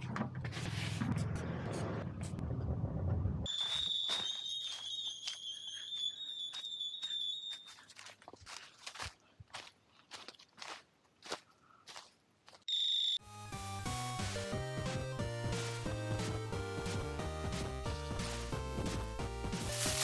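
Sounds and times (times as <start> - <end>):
footsteps crunching through dry leaves: 3.5 - 5.8, 7.5 - 12.1, 17.9 - 20.0
loud high beep: 3.5 - 7.7, 12.7 - 13.2
high wavering tone: 3.5 - 7.8
music: 13.2 - 20.0.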